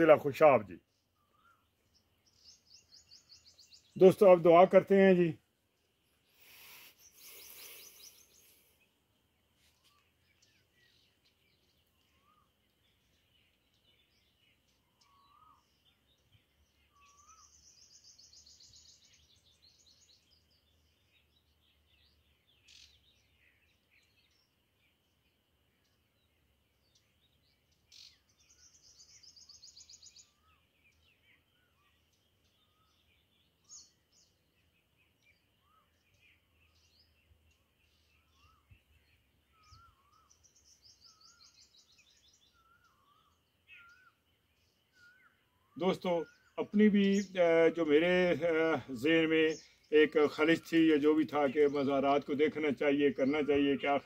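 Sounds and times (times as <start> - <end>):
birds chirping: 0.0 - 54.0.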